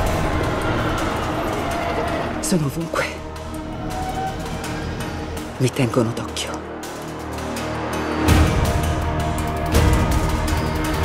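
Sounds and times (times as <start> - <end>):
mechanical rumble of transit cars: 0.0 - 5.6
trailer music: 0.0 - 11.0.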